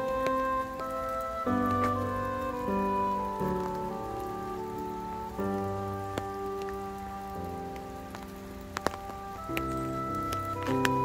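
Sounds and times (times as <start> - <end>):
loud water drips: 0.0 - 11.0
slow music of sustained chords: 0.0 - 11.0
steady rain falling: 0.0 - 11.0.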